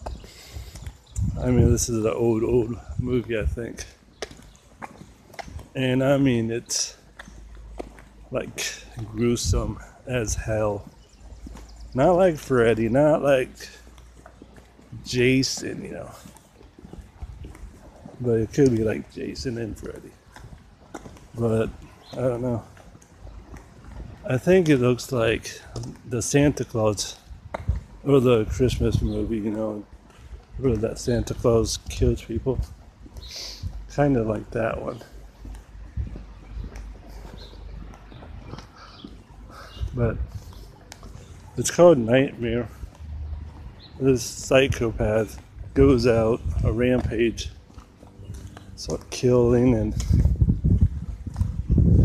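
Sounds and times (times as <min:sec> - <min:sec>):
faint footsteps: 0:00.0 - 0:52.0.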